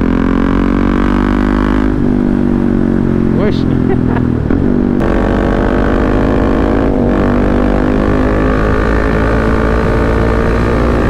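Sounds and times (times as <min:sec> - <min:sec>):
motorcycle engine droning: 0:00.0 - 0:11.0.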